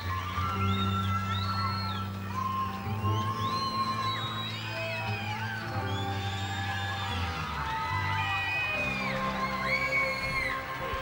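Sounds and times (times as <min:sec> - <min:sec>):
audience screams and whoops: 0:00.0 - 0:11.0.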